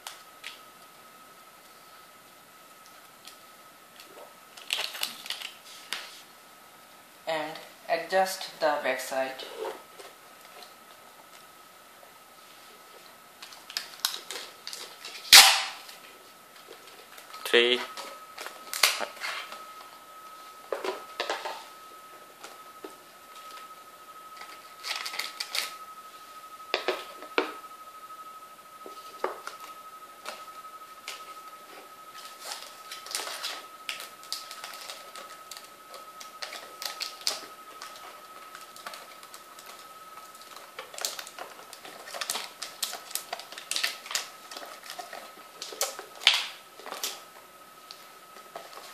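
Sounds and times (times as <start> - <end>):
packing tape ripping off roll: 4.5 - 6.2, 13.4 - 16.0, 18.4 - 19.5, 24.5 - 25.8, 32.2 - 47.3
faint steady high tone: 15.6 - 48.9.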